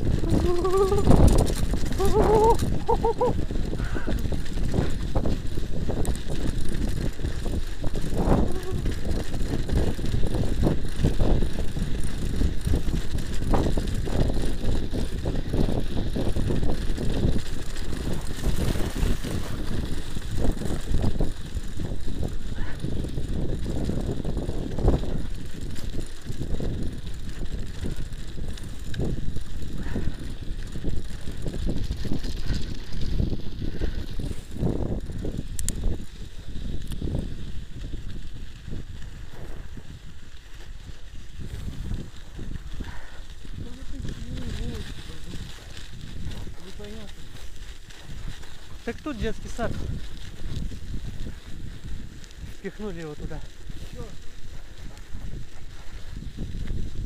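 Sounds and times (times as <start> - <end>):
bicycle knocks and rattles: 0.0 - 39.0
bicycle rumbling over bumpy snow: 0.0 - 57.0.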